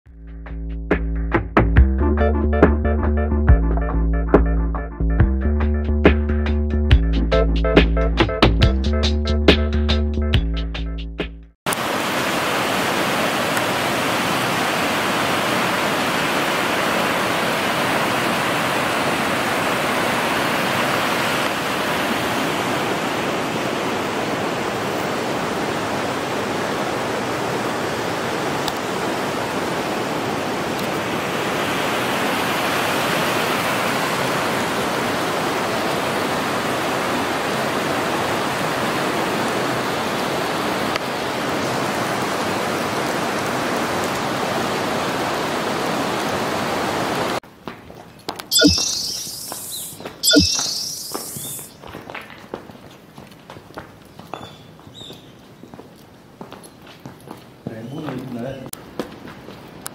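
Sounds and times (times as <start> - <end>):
river water rushing over rocks: 11.7 - 47.4.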